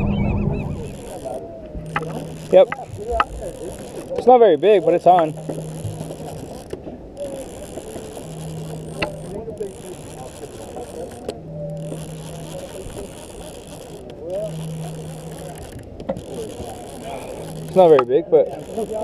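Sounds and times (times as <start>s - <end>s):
fishing reel gears whirring: 0.0s - 19.0s.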